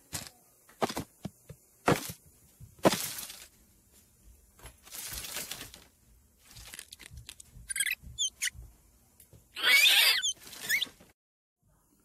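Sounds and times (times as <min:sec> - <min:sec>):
mouse squeaking: 0:07.7 - 0:08.6, 0:09.6 - 0:11.0.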